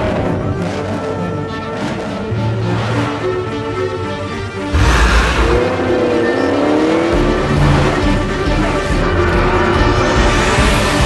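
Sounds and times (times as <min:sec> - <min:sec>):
car engine accelerating: 0:01.8 - 0:11.0.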